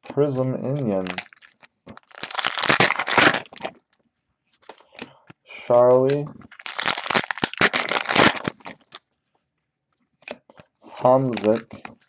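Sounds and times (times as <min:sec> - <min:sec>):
foil wrapper tearing and crinkling: 0:00.8 - 0:03.8, 0:06.5 - 0:09.0, 0:11.3 - 0:12.0.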